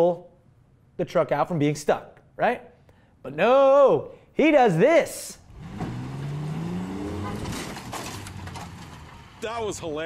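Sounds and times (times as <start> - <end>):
pickup engine revving: 5.5 - 9.8.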